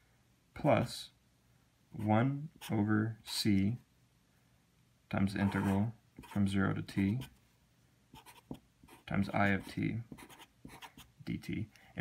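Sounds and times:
marker writing on paper: 5.4s - 6.4s, 8.2s - 11.1s.

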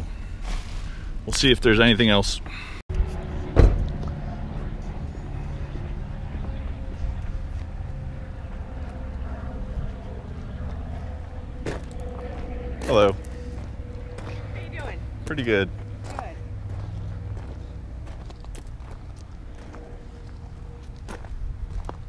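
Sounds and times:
low outdoor rumble: 0.0s - 22.0s.

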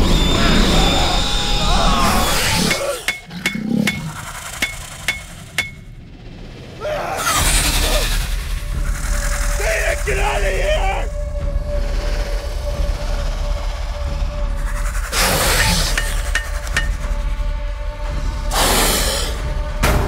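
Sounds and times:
horror film music: 0.0s - 20.0s
sharp metallic clicks: 2.7s - 5.9s.

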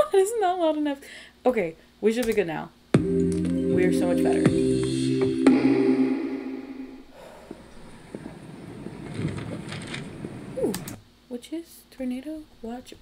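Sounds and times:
held music chord: 3.0s - 7.1s.

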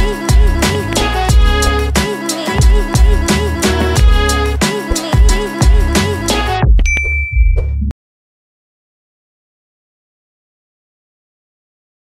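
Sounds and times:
background music with steady beat: 0.0s - 6.9s
notification bell ding: 6.8s - 7.8s.

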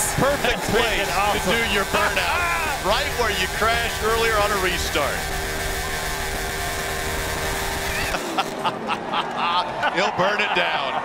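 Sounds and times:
race car engine at high revs: 0.0s - 9.2s
tyres spinning on pavement: 0.0s - 10.0s.

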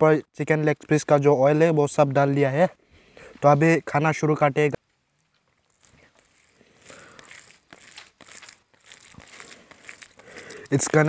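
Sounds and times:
fingers squishing rice: 5.5s - 11.0s.

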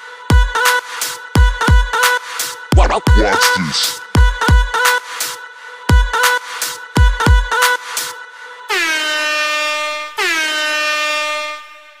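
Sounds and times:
electronic beat: 2.7s - 4.0s.

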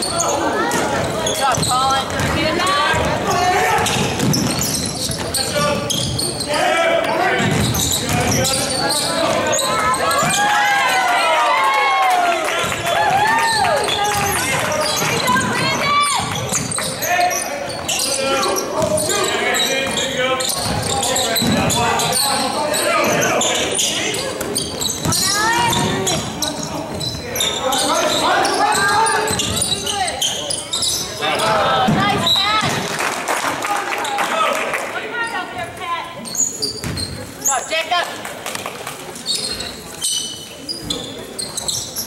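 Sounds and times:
sneakers squeaking: 0.0s - 11.0s, 12.6s - 32.9s, 35.1s - 42.0s
basketball bouncing: 0.7s - 6.2s, 7.4s - 8.6s, 20.6s - 21.8s, 24.4s - 27.2s, 36.8s - 37.2s.

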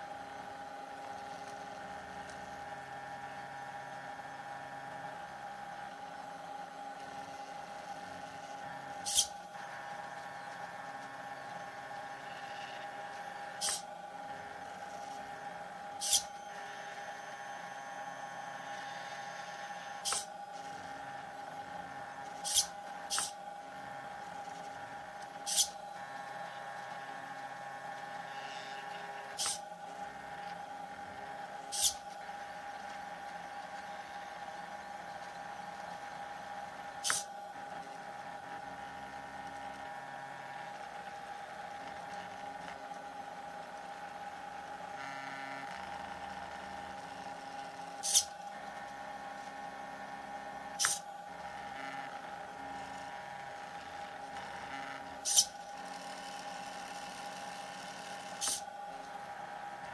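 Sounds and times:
steady high whine: 0.0s - 45.0s
stepper motors whining: 7.0s - 44.0s
servo clicks: 13.6s - 13.8s, 16.0s - 16.3s, 20.0s - 20.3s, 22.3s - 23.4s, 25.2s - 25.8s, 29.4s - 29.6s, 31.7s - 32.0s, 48.0s - 48.3s, 58.3s - 58.6s.

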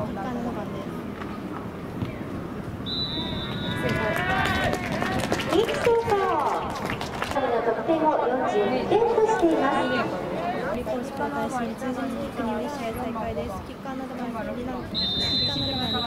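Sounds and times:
referee's whistle: 2.8s - 3.9s, 14.9s - 16.0s
crowd shouting and cheering: 3.0s - 6.4s.

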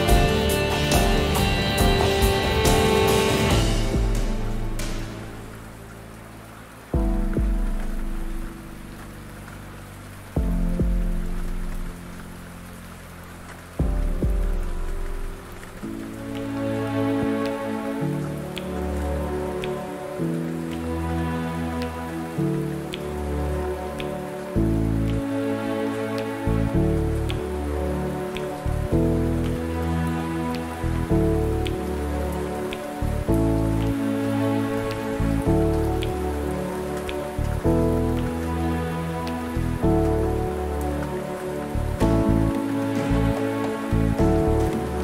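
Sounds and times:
soft beat with light ticks: 0.0s - 5.8s, 6.9s - 9.6s, 10.4s - 12.4s, 13.4s - 16.6s, 18.4s - 18.8s, 19.6s - 19.9s, 20.6s - 20.9s, 21.8s - 23.2s, 23.9s - 25.4s, 26.2s - 27.5s, 28.3s - 29.7s, 30.5s - 34.0s, 34.9s - 38.5s, 39.2s - 45.0s
steady rain: 0.0s - 45.0s.

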